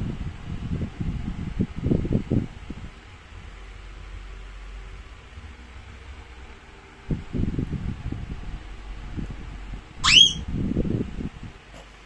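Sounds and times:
child squealing: 10.0s - 10.4s.

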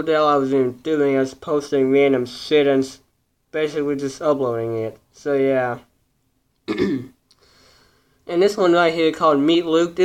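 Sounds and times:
man clearing his throat: 6.7s - 7.2s.

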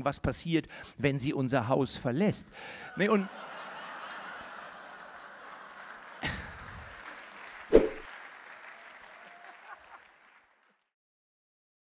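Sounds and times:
audience laughing: 2.9s - 7.3s
audience applauding: 3.1s - 10.9s
short sharp sounds: 7.7s - 8.1s.

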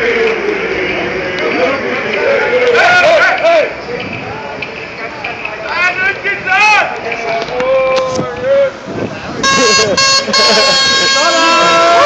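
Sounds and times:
voices: 0.0s - 12.0s
horn sounding high note: 9.4s - 12.0s.

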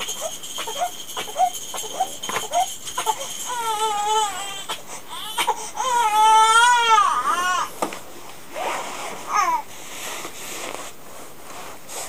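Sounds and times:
baby crying: 0.6s - 7.7s.

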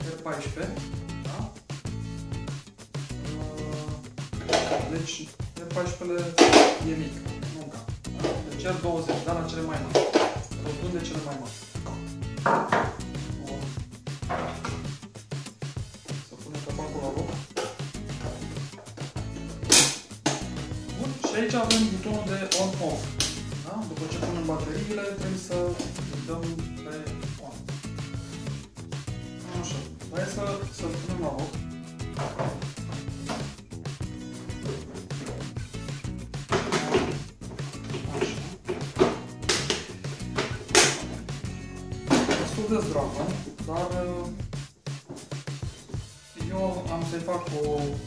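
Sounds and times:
background music: 0.0s - 48.0s.

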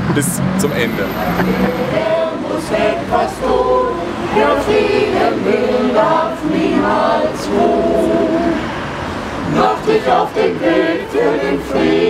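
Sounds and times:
group of people singing: 0.9s - 12.0s.

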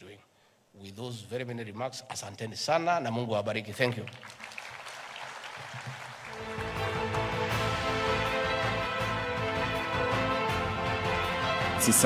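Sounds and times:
audience applauding: 4.0s - 12.0s
music with steady bass: 6.4s - 12.0s.

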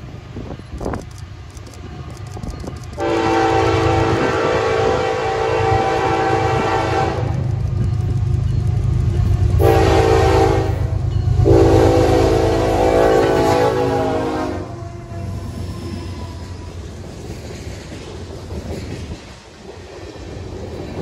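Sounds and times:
locomotive engine and wheels rumbling: 0.0s - 21.0s
locomotive air horn: 3.0s - 7.4s, 9.6s - 15.3s.

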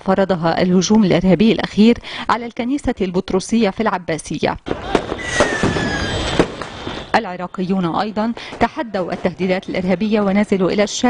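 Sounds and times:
fireworks crackle: 4.6s - 7.2s
fireworks bangs: 4.6s - 9.8s
firework whistle falling in pitch: 5.2s - 6.4s.

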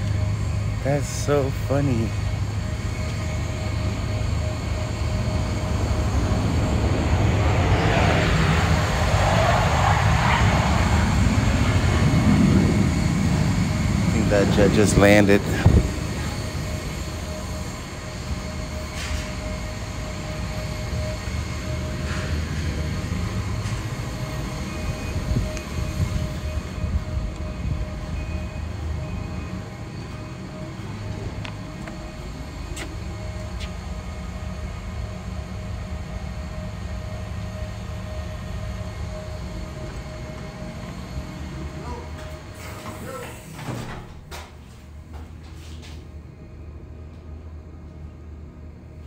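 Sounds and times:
jet engines rumbling and whining: 0.0s - 49.0s.

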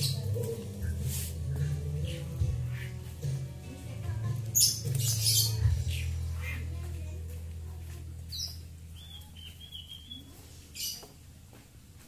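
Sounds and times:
songbird squeaking calls: 4.6s - 6.7s, 8.3s - 11.1s.

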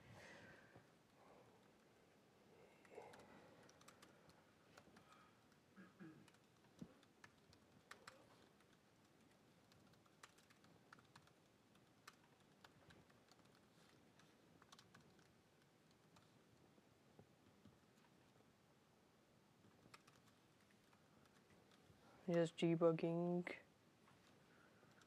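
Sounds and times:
typing on laptop keyboard: 2.8s - 16.6s, 19.6s - 21.9s, 24.8s - 25.0s.

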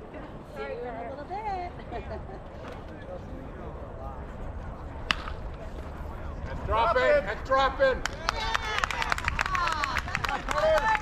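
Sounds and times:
bat cracking against ball: 5.0s - 5.9s.

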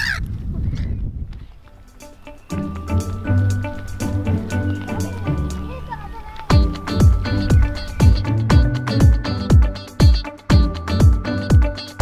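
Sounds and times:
gulls squawking: 2.0s - 10.3s.

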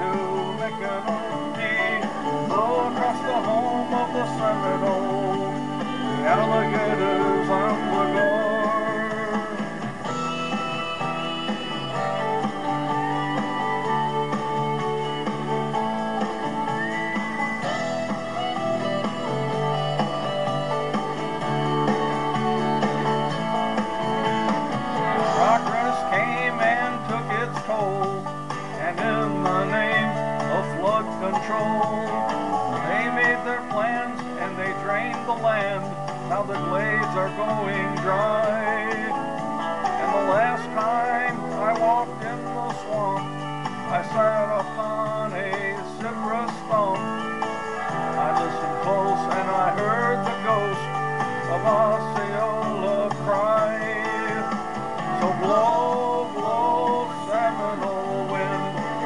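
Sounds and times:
country band with guitars: 0.0s - 59.0s.

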